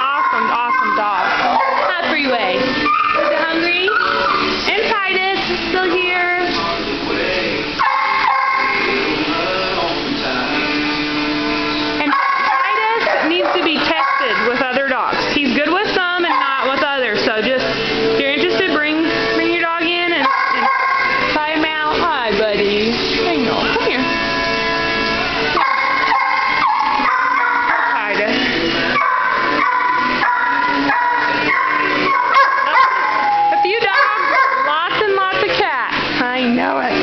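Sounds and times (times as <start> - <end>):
dogs howling: 0.0 - 4.6, 7.8 - 9.1, 12.0 - 17.2, 20.1 - 21.4, 25.5 - 35.1
dog whining high-pitched: 2.8 - 4.5, 29.0 - 34.8.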